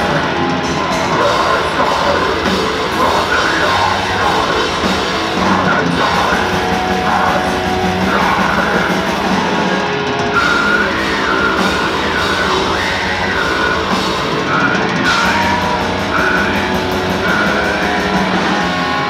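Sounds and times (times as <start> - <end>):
bass guitar: 0.0 - 19.0
distorted electric guitars: 0.0 - 19.0
drum kit: 0.0 - 19.0
harsh shouted vocals: 0.0 - 19.0.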